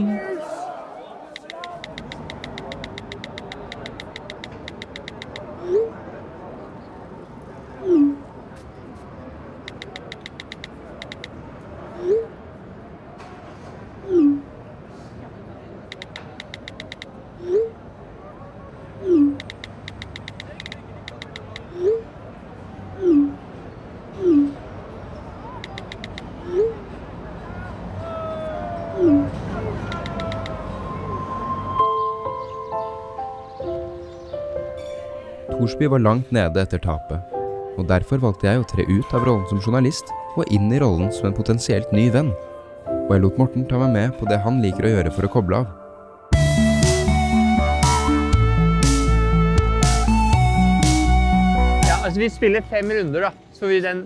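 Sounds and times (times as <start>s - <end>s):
phone keyboard clicks: 1.4s - 5.5s, 9.7s - 11.4s, 15.9s - 17.2s, 19.3s - 21.7s, 25.6s - 26.3s, 29.9s - 30.6s
rising message send sound: 46.3s - 52.7s.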